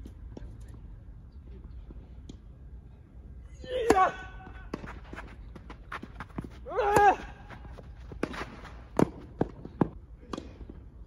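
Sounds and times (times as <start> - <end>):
racket striking ball: 4.6 - 5.3, 8.1 - 9.6
footsteps scuffing on court: 4.8 - 6.6.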